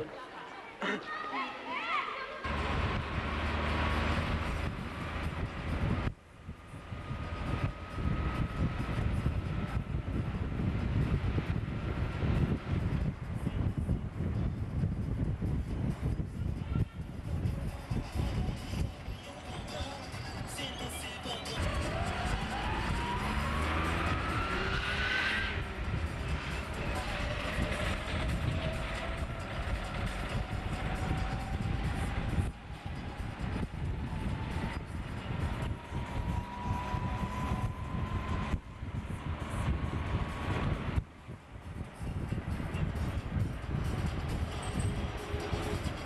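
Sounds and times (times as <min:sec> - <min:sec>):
rising drivetrain whine: 0:02.4 - 0:16.4, 0:17.0 - 0:46.0
road rumble: 0:02.4 - 0:46.0
vehicle engine and drivetrain: 0:02.4 - 0:46.0.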